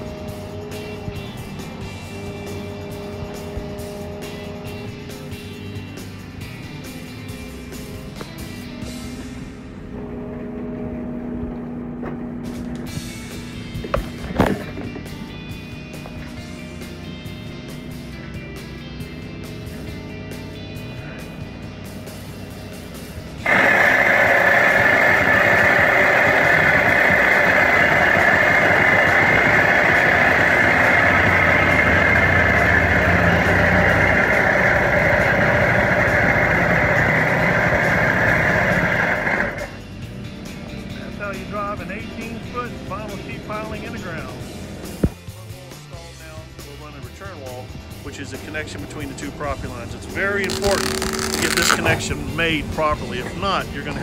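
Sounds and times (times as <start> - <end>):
background music: 0.0 - 10.9, 12.3 - 28.8, 29.5 - 54.0
loud steady machine noise: 22.9 - 39.8, 50.4 - 52.1.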